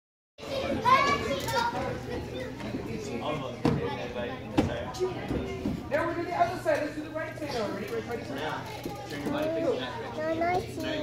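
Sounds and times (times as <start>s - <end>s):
children's voices: 0.4s - 2.9s.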